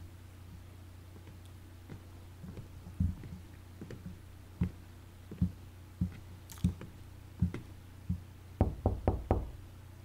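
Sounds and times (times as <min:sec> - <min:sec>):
dull thuds: 0:01.2 - 0:09.5
knocking on door: 0:08.6 - 0:09.6.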